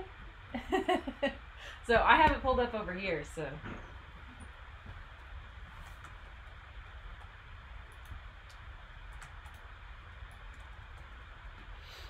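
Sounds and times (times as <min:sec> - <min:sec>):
room tone hum: 0:00.0 - 0:12.0.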